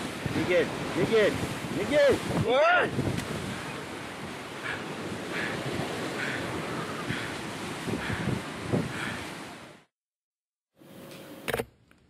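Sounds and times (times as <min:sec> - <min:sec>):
rushing water: 0:00.0 - 0:09.9
wind: 0:00.0 - 0:10.0, 0:10.7 - 0:12.0.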